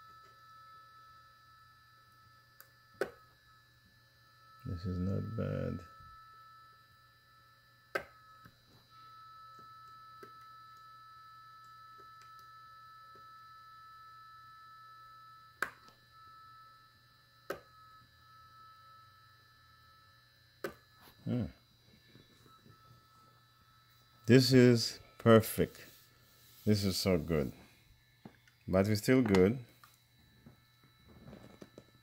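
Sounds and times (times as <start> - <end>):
cooling fan hum: 0.0 - 32.0.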